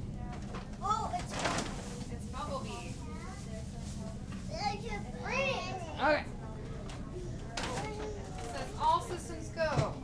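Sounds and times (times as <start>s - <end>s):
busy room background din: 0.0s - 10.0s
children calling out and chattering: 4.5s - 6.1s, 7.1s - 8.9s.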